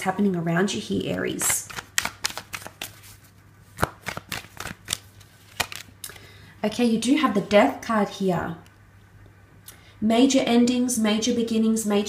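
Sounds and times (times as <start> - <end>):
cards being shuffled: 1.0 - 6.0.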